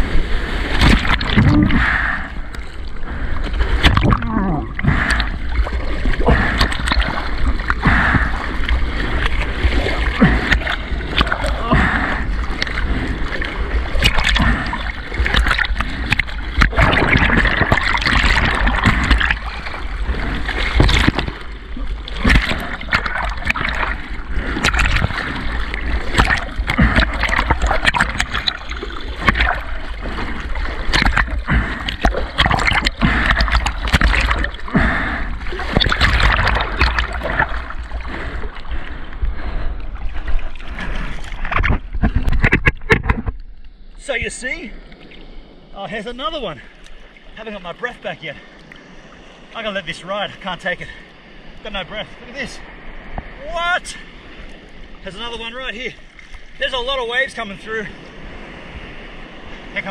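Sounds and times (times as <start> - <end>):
seawater rushing and splashing: 0.0 - 59.9
water buffeting microphone: 0.0 - 59.9
water slapping: 0.0 - 59.9.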